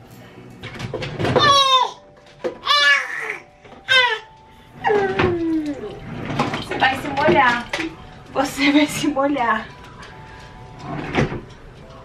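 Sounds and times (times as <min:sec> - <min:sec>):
baby high-pitched calls: 0:01.4 - 0:02.0, 0:02.6 - 0:04.3.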